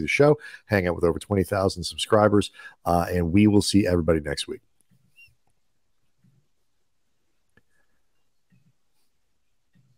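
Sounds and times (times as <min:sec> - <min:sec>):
faint short squeak: 0:05.0 - 0:05.4.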